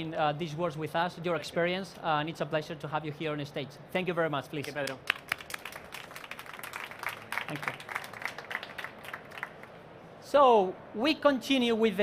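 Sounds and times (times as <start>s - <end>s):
many hands clapping: 4.6s - 9.7s
sharp loud claps: 4.6s - 9.7s.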